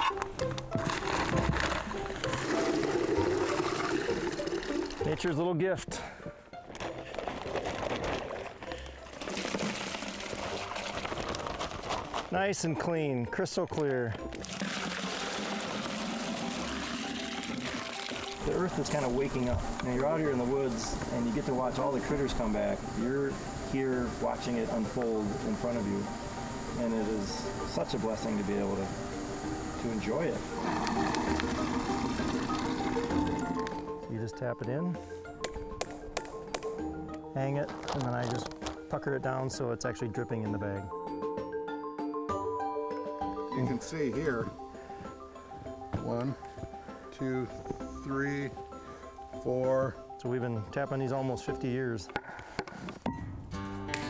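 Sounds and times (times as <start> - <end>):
background music with sustained notes: 0.0 - 54.0
liquid splashing into bucket: 0.8 - 5.1, 9.1 - 11.6, 14.3 - 18.6.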